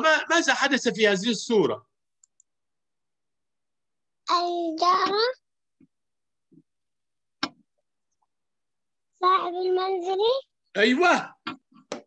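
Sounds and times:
faint clicks: 2.2s - 2.5s.

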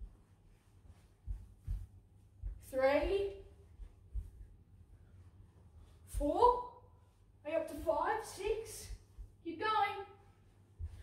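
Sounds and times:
child's running footsteps: 0.0s - 4.6s.

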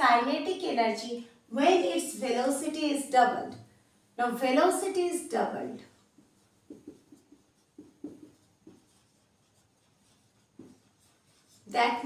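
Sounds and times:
marker pen on whiteboard: 4.6s - 12.0s.

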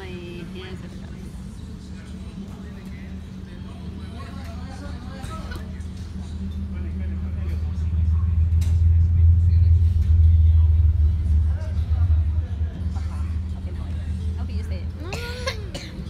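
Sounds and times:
steady hum: 0.0s - 16.0s
loud low rumble: 5.6s - 16.0s.

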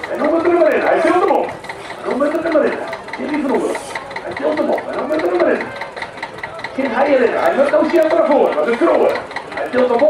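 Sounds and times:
tractor engine idling with ticking: 0.0s - 10.0s.

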